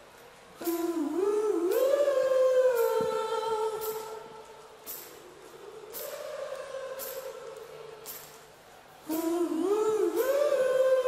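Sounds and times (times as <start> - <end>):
soft cymbal ticks: 0.0 - 11.0
person humming a melody: 0.6 - 4.5, 9.1 - 11.0.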